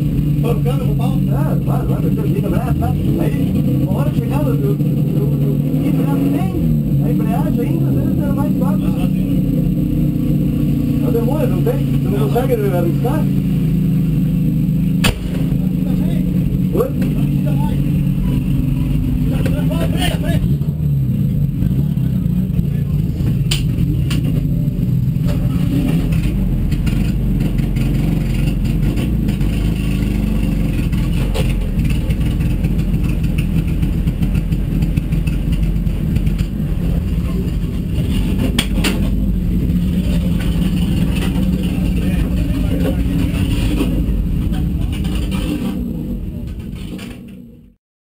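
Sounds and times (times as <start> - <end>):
race car engine at low revs: 0.0 - 47.8
sharp clicks: 15.0 - 15.5.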